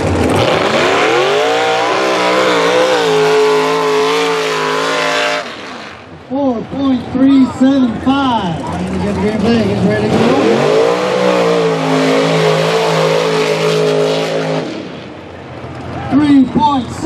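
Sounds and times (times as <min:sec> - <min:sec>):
tyres churning mud: 0:00.0 - 0:06.0
pickup truck engine revving: 0:00.0 - 0:06.1, 0:08.9 - 0:15.3.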